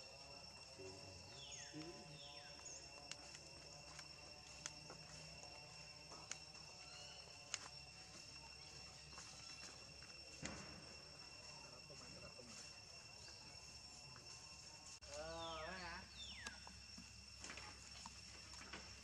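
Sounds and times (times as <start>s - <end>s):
insect chirring: 0.0s - 19.0s.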